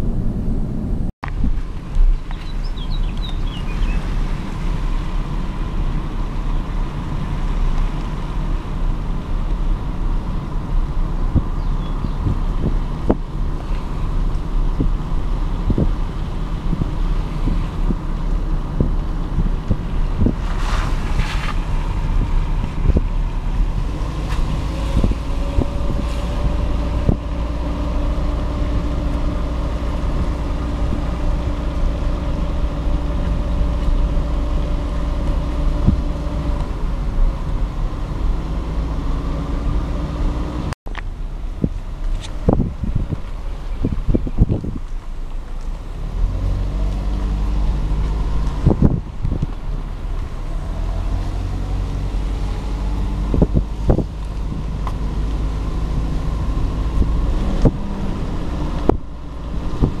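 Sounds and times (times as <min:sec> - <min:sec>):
car engine and road rumble: 0:00.0 - 1:00.0.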